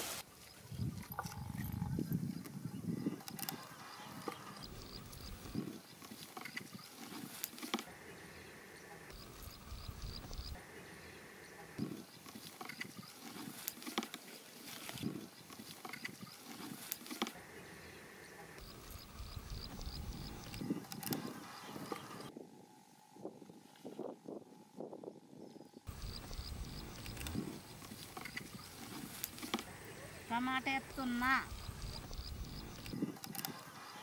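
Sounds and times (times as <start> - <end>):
wind on microphone: 0.6 - 5.8, 30.8 - 33.2
fire crackling: 4.6 - 5.9, 9.1 - 10.6, 18.6 - 21.2, 25.9 - 33.6
faint high chirps: 8.6 - 11.7, 25.4 - 34.0.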